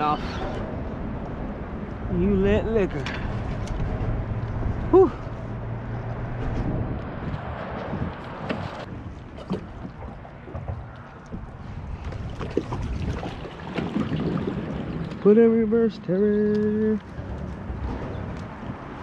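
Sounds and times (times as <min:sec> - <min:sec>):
wind on microphone: 0:00.0 - 0:19.0
water lapping against kayak hull: 0:03.0 - 0:19.0.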